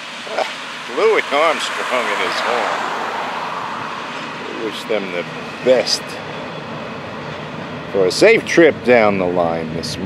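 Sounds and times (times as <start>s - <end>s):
steel train wheels on rail: 0.0s - 10.0s.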